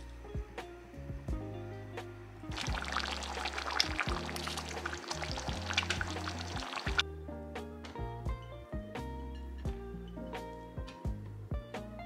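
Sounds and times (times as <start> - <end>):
background music: 0.0 - 12.0
curry bubbling in a pot: 2.5 - 7.0.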